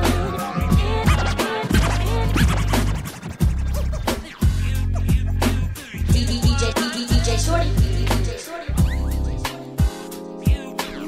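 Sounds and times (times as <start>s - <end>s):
hip hop beat with deep bass: 0.0s - 11.0s
turntable scratching: 0.0s - 11.0s.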